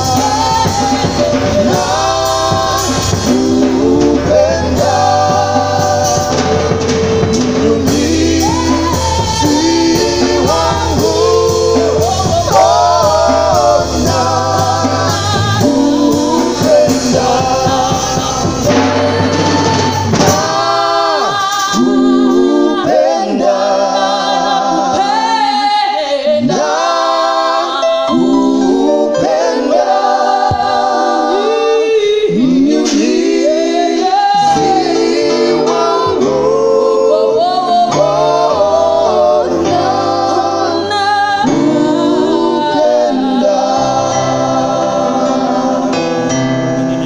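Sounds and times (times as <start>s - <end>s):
choir singing a worship song: 0.0s - 47.0s.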